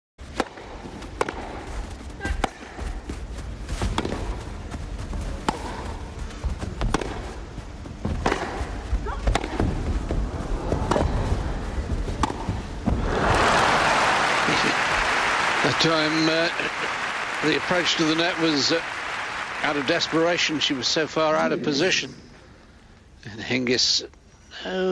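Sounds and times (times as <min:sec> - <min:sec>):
racket hitting tennis ball: 0:00.2 - 0:02.8, 0:03.8 - 0:04.4, 0:05.4 - 0:06.1, 0:06.8 - 0:09.9, 0:10.8 - 0:11.3, 0:12.1 - 0:13.1
crowd hum: 0:05.2 - 0:22.9
crowd applause: 0:12.9 - 0:21.2.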